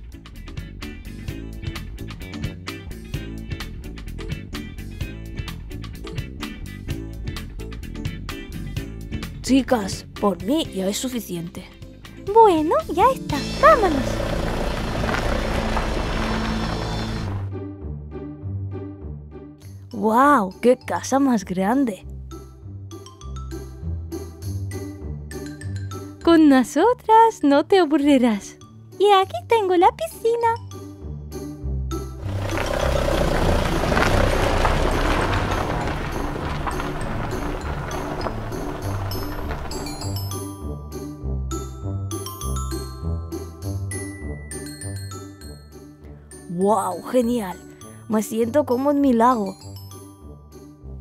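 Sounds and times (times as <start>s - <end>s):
background music with bass line: 0.0s - 10.4s
truck engine rumbling: 12.8s - 17.5s, 32.0s - 40.6s
water pouring into plastic pool: 14.1s - 17.4s, 32.2s - 40.2s.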